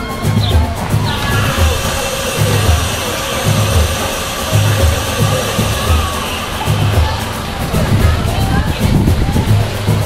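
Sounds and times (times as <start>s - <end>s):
music with repeating bass beat: 0.0s - 10.0s.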